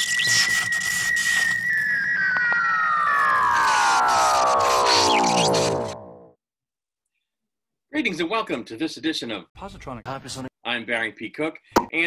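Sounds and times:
synth whistle sliding down: 0.0 - 6.4.

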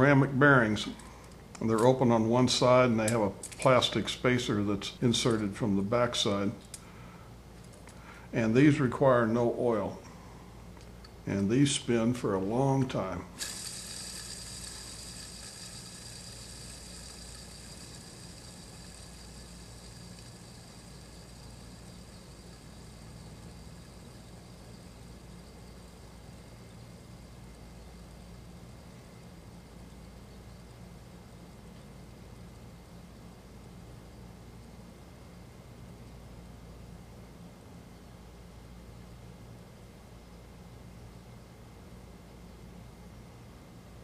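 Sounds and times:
steady low hum: 0.0 - 44.0
fidget spinner whirring: 13.1 - 30.9.

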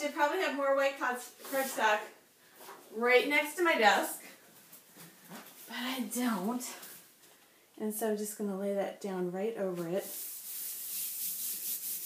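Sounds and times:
hand rubbing on cardstock: 10.0 - 12.0.

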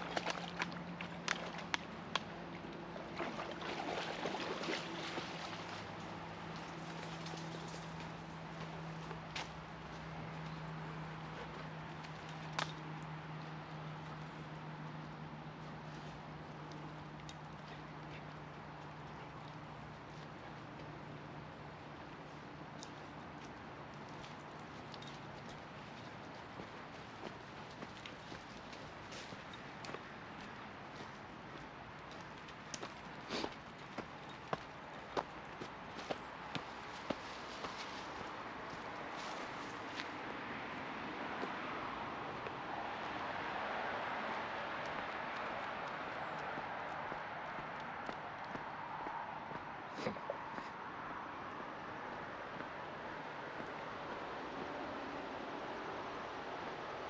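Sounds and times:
outdoor wash: 0.0 - 57.0
road traffic passing: 0.0 - 57.0.

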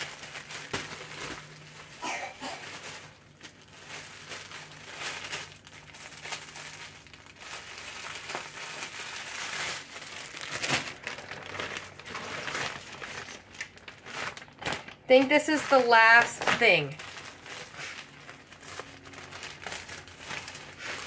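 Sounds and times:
plastic packaging crinkling: 0.0 - 21.0.

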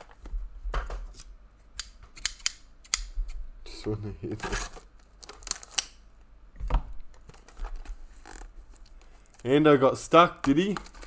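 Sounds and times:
plastic shrink-wrap crinkling: 10.6 - 11.0.

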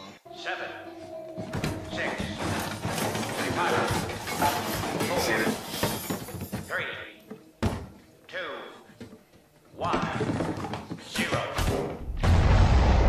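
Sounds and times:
clattering noisy background: 1.0 - 8.3, 8.9 - 12.0.

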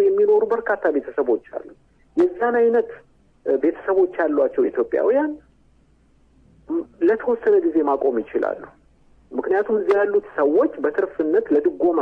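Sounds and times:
person reading news: 0.0 - 5.5, 6.7 - 12.0.

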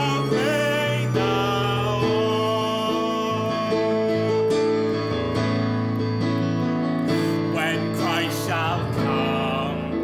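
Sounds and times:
sustained piano chords: 0.0 - 10.0.

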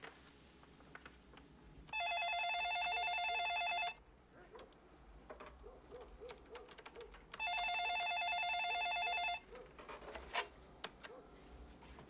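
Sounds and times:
tapping on a computer keyboard: 6.0 - 8.2
telephone ringing with warbling trill: 7.4 - 9.4.

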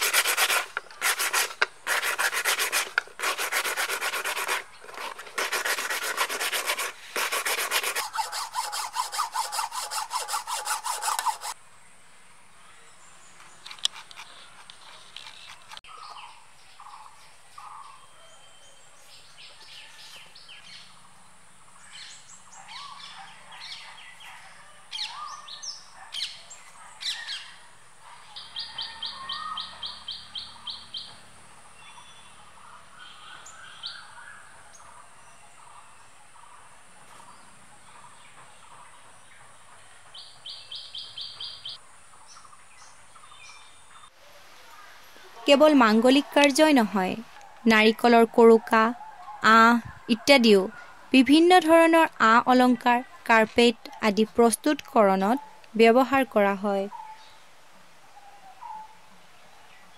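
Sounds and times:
birds chirping and calling: 28.2 - 39.5.

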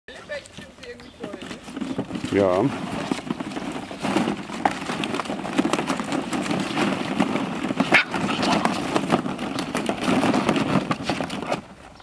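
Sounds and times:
plastic balls clattering: 1.3 - 12.0.

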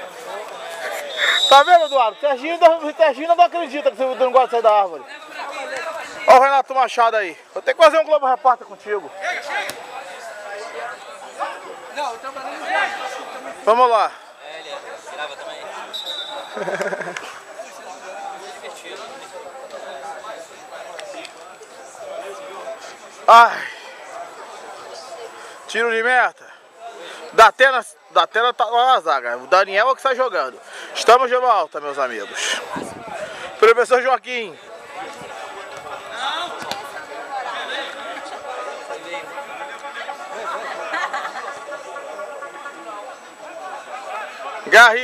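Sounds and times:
men talking and calling out: 0.0 - 45.0
players calling out: 0.1 - 4.6, 14.8 - 19.4.

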